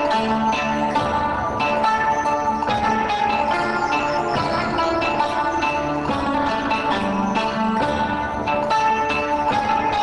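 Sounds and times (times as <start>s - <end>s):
layered synthesizer music: 0.0s - 10.0s.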